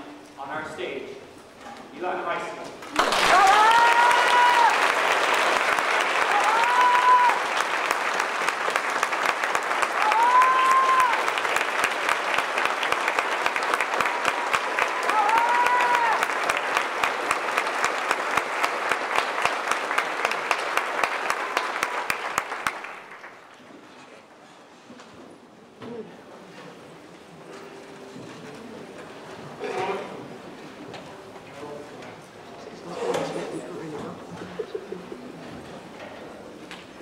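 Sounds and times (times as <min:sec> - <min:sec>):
audience applauding: 0:02.8 - 0:23.7.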